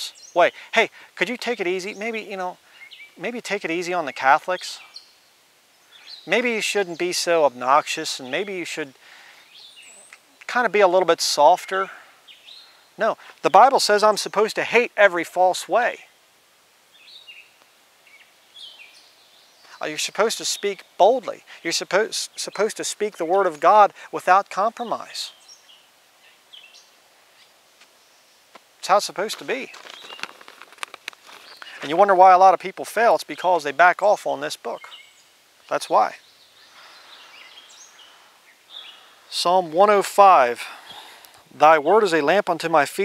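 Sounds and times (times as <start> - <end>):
bird chirping: 0.0 - 16.2, 16.9 - 43.0
steady outdoor hiss: 0.0 - 43.0.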